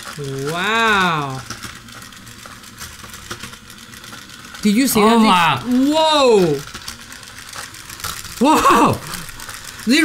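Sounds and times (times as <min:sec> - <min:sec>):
small electric motor running: 0:00.0 - 0:10.0.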